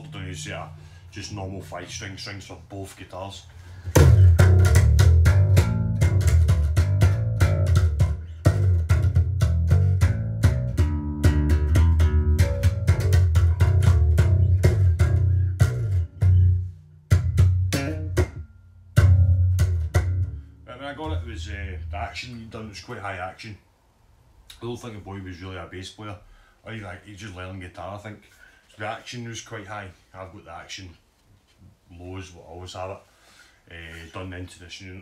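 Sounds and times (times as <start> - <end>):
electric bass guitar plucked notes: 0.0 - 2.1, 3.9 - 22.8.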